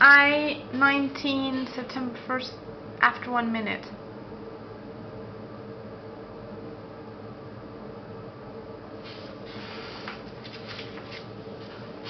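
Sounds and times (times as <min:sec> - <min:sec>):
steady low hum: 0:00.0 - 0:12.0
rustling and scratching: 0:09.0 - 0:12.0.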